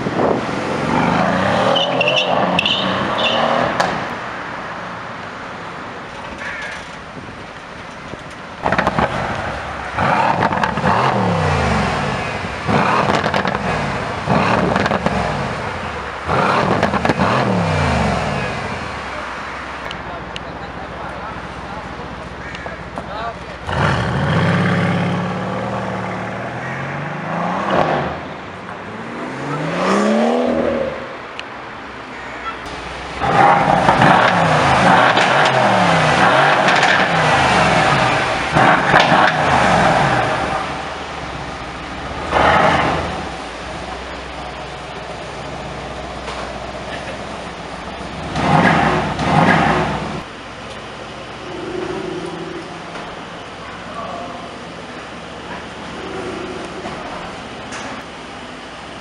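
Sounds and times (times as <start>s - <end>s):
car engine revving: 8.6s - 19.9s, 23.5s - 31.2s, 32.7s - 50.3s.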